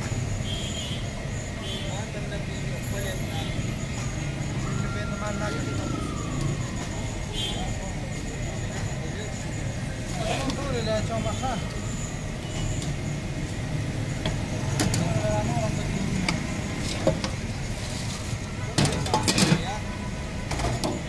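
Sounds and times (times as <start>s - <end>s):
faint voices: 1.0s - 21.0s
metal utensils clinking: 18.8s - 19.6s.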